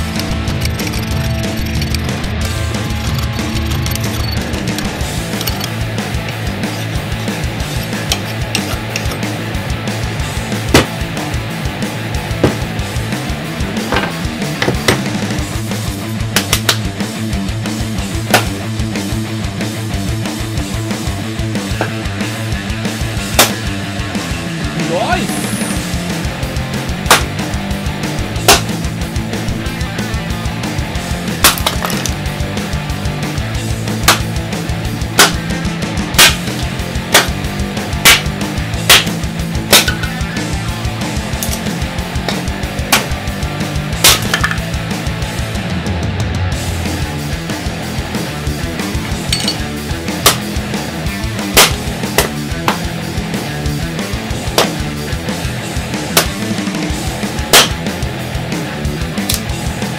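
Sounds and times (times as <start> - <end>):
background music: 0.0 - 59.9
axe chopping wood: 10.7 - 11.0, 12.4 - 12.7, 18.3 - 18.6, 23.4 - 23.6, 27.0 - 27.4, 28.4 - 28.8, 31.4 - 32.1, 34.0 - 34.3, 35.2 - 35.4, 36.2 - 36.5, 37.1 - 37.4, 38.0 - 38.3, 38.9 - 40.1, 42.3 - 43.2, 44.0 - 44.6, 50.2 - 50.5, 51.6 - 52.9, 54.6 - 54.8, 56.1 - 56.4, 57.5 - 57.8.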